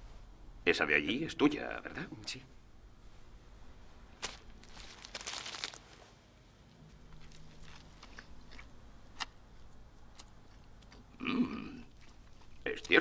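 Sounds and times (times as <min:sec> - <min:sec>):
chewing mouth sounds: 0:07.1 - 0:13.0.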